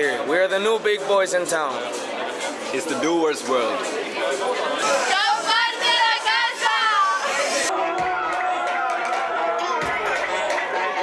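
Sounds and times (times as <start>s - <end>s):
music playing: 1.9s - 11.0s
party crowd shouting and cheering: 3.8s - 11.0s.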